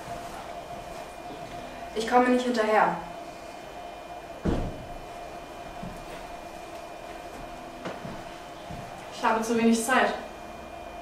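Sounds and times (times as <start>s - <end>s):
steady low hum: 0.0s - 11.0s
soft thump: 4.4s - 4.9s.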